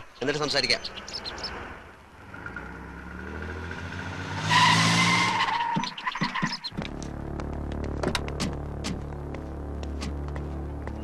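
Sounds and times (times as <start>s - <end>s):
car engine running: 5.7s - 11.0s.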